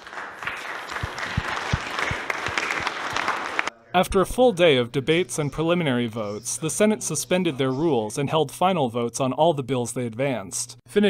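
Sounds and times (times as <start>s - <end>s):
crowd applauding: 0.0s - 3.7s.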